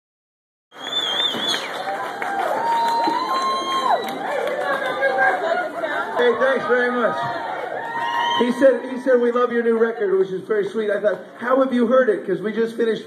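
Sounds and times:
warbling whistle: 0:00.8 - 0:01.8
audience cheering and shouting: 0:01.2 - 0:10.3.

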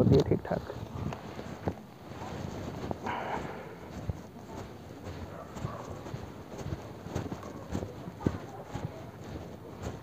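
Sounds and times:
dry bamboo husk rustling: 0:00.6 - 0:10.0.

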